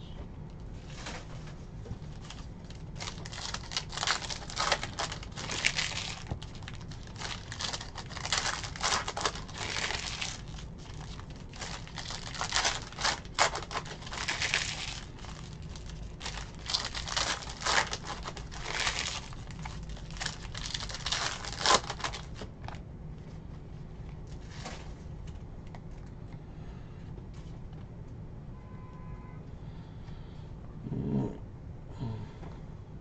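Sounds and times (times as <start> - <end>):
steady low hum: 0.0 - 33.0
foil wrappers crinkling: 2.0 - 22.8.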